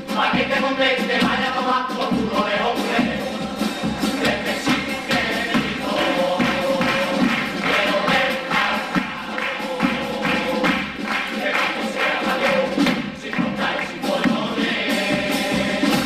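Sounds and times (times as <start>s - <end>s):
male voices singing together: 0.0s - 16.0s
steady percussion beat: 0.0s - 16.0s.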